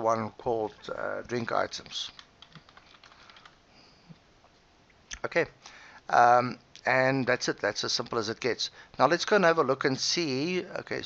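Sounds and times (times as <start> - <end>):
faint keyboard keystrokes: 2.1 - 3.6.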